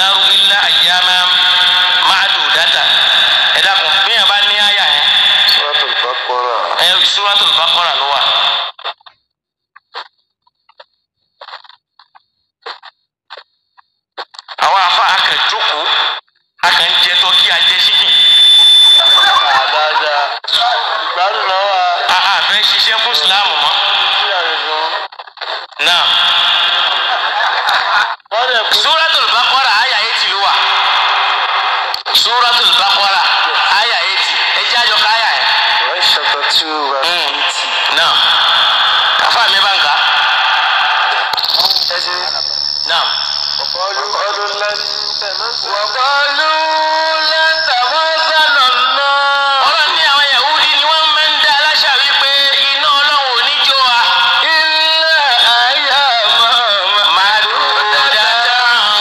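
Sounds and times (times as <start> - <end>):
person speaking loudly: 19.0 - 25.0.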